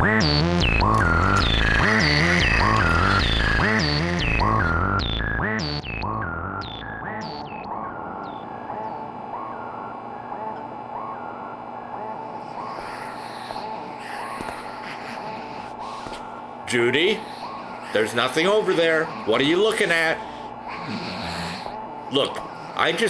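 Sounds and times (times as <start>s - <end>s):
steady hum: 0.6s - 5.0s, 7.6s - 23.0s
synthesizer blips: 0.6s - 5.5s.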